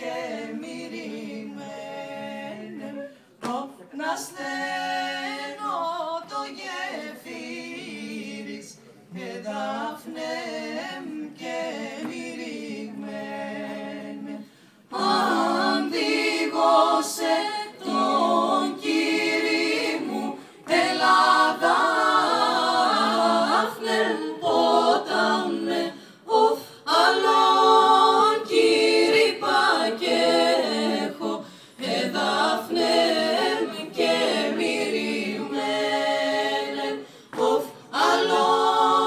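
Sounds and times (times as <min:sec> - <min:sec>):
a cappella group singing: 0:00.0 - 0:39.0.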